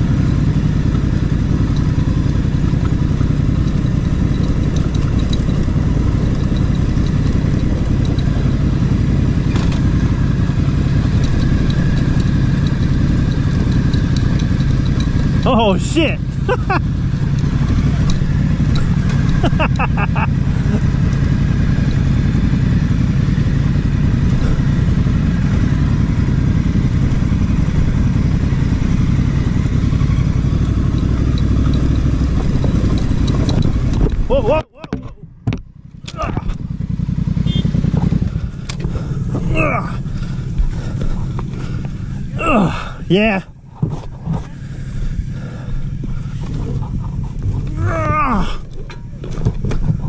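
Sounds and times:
tyre noise: 0.0s - 36.8s, 37.5s - 50.0s
motorcycle engine running: 0.0s - 50.0s.

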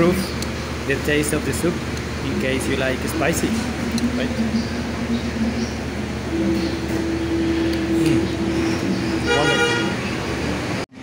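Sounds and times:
street traffic drone: 0.0s - 11.0s
vehicle horn tooting: 9.2s - 10.4s.

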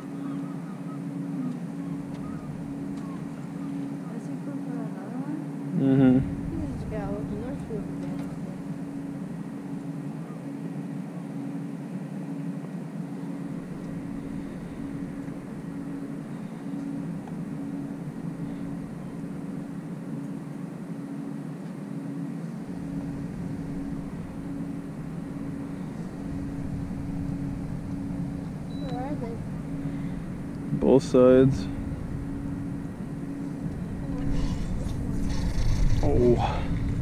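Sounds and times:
boat motor running: 0.0s - 10.8s, 12.4s - 37.0s.

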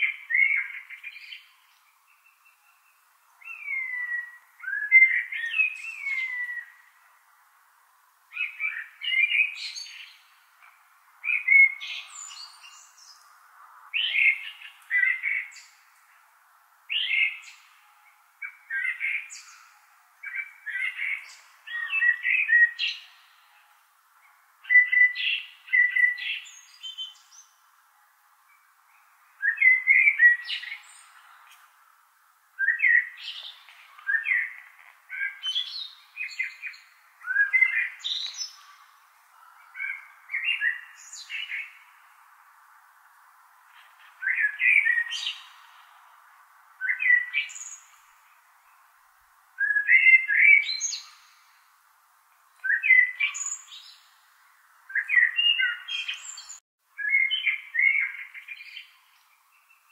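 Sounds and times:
songbird singing: 0.0s - 59.9s.

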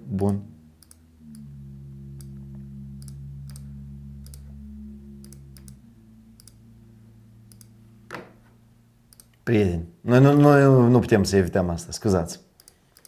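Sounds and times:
low steady hum of held tones: 0.0s - 13.0s
irregular sharp clicks: 0.8s - 1.0s, 9.1s - 9.5s, 12.5s - 13.0s.

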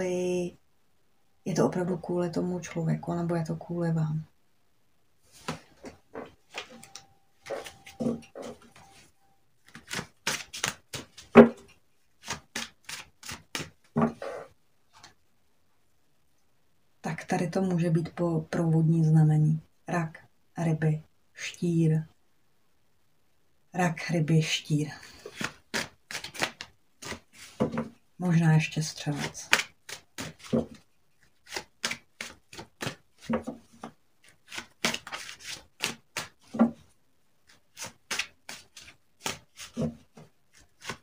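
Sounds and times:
hands handling cards: 5.4s - 15.2s, 25.2s - 27.8s, 29.1s - 30.8s, 31.4s - 36.6s, 37.5s - 41.0s.

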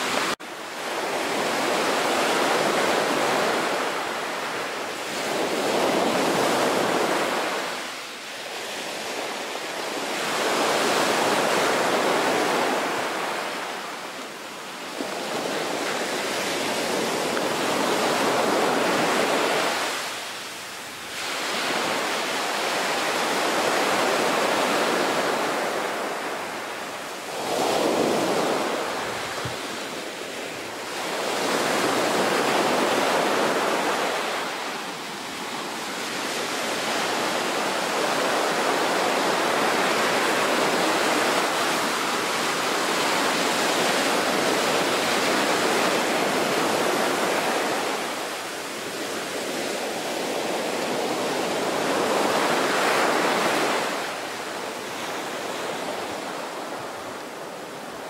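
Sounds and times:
wind buffeting microphone: 27.3s - 30.0s.

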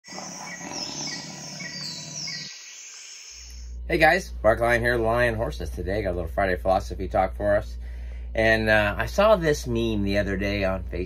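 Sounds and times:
birds chirping: 0.0s - 4.1s
low steady hum: 0.2s - 11.0s
man speaking: 3.9s - 7.8s, 8.4s - 11.0s.

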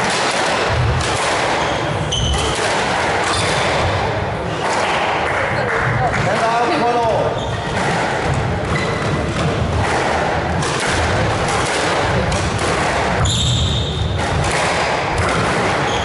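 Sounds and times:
squash ball struck by rackets: 0.0s - 6.6s, 7.6s - 16.0s
murmur of spectators talking: 0.6s - 16.0s
shoes squeaking on wooden floor: 1.6s - 2.6s, 7.0s - 7.8s, 8.6s - 9.2s, 15.8s - 16.0s.

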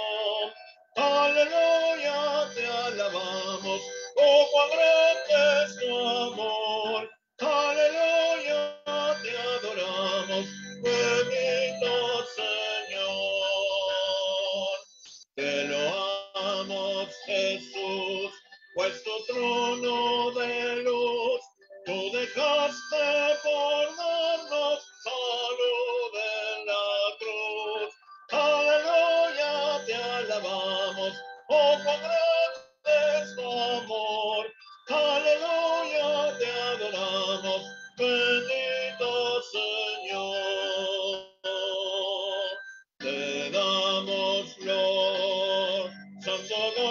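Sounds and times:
hymn sung with accompaniment: 0.0s - 14.8s, 15.4s - 46.9s.

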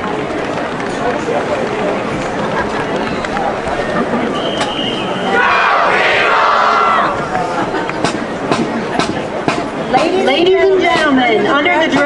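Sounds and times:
crowd murmuring: 0.0s - 12.0s
crowd shouting and cheering: 0.0s - 12.0s.

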